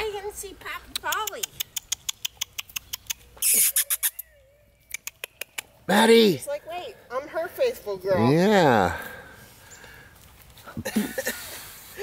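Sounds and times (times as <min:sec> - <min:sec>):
tongue clicks: 0:00.9 - 0:05.8
short hiss: 0:03.4 - 0:04.2.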